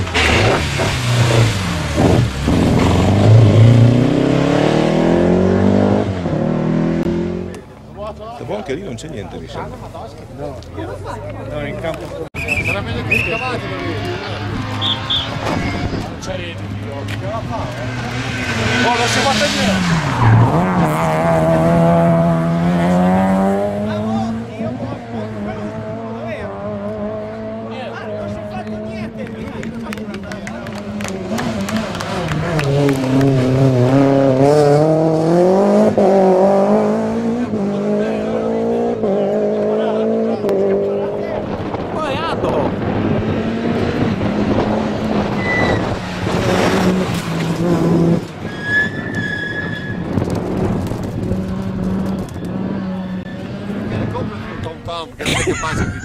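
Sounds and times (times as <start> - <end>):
rally car engines revving: 0.0 - 56.0.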